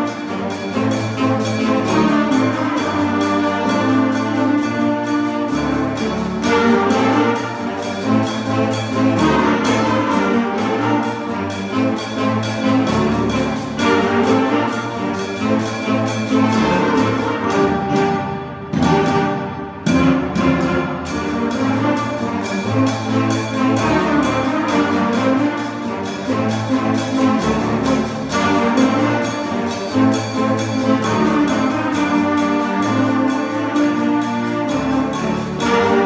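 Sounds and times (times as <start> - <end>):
saxophones and brass: 0.0 - 36.0.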